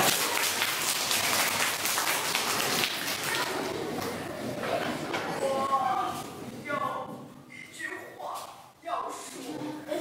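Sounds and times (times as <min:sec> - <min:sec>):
children applauding: 0:00.0 - 0:03.6.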